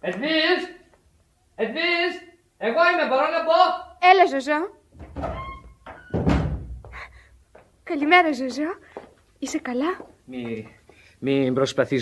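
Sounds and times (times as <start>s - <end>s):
door shutting with heavy thump: 5.0s - 6.9s.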